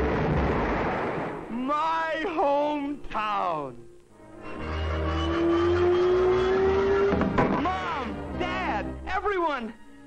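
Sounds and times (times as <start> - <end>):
long rising note: 4.2 - 7.2
cartoon music: 4.3 - 9.0.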